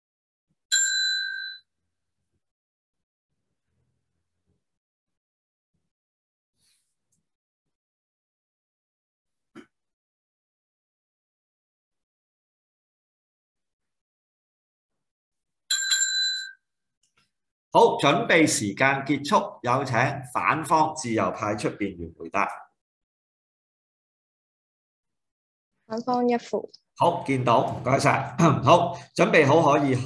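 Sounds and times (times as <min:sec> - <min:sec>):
small bell ringing: 0:00.7 - 0:01.6, 0:15.7 - 0:16.6.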